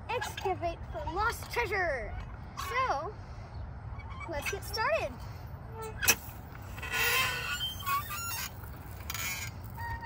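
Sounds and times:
squeaking pivots: 5.7s - 10.0s.

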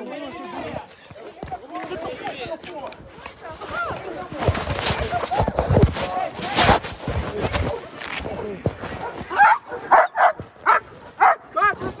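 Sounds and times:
dog barking: 9.0s - 11.9s.

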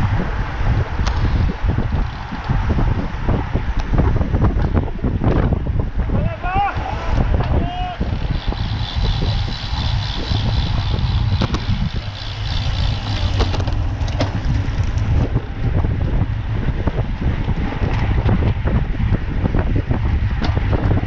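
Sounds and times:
wind buffeting microphone: 0.0s - 21.0s
person shouting: 6.2s - 8.1s.

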